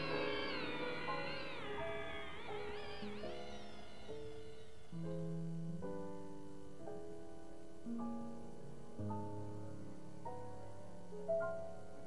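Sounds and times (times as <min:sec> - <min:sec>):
high sliding wavering tone: 0:00.0 - 0:05.3.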